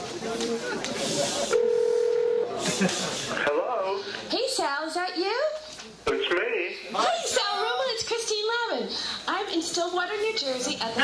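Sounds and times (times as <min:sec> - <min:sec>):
audience murmuring: 0:00.0 - 0:04.6
telephone ringback tone: 0:01.6 - 0:02.5.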